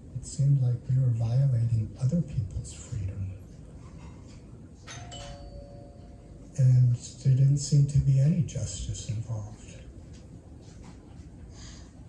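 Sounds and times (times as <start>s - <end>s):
two-note chime: 4.9s - 6.4s.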